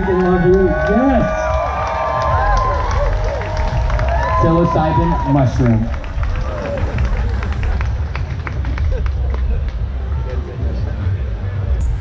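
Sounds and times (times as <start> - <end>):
audience clapping: 0.0 - 10.0.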